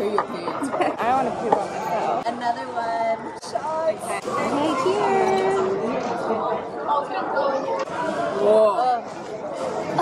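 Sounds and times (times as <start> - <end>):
murmur of indoor crowd: 0.0 - 10.0.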